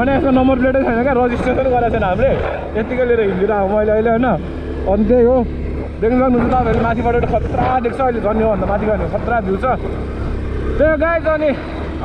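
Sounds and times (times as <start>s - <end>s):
motorcycle engine humming: 0.0s - 12.0s.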